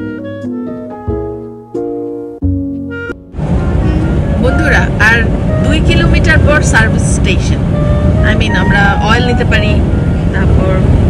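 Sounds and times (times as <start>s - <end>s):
car cabin road rumble: 2.8s - 11.0s
woman talking: 4.4s - 7.6s, 8.2s - 11.0s.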